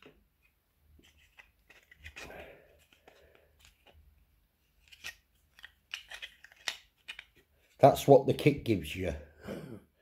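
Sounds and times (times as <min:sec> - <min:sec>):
plastic parts clicking on mat: 0:04.8 - 0:07.5.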